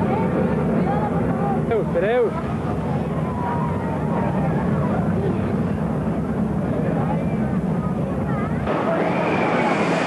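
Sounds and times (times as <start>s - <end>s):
people talking and calling: 0.0s - 10.0s
steady low rumble: 0.0s - 10.0s.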